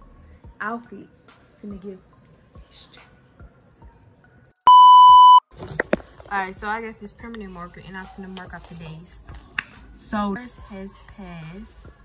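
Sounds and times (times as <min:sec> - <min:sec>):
censor beep tone: 0:04.7 - 0:05.4.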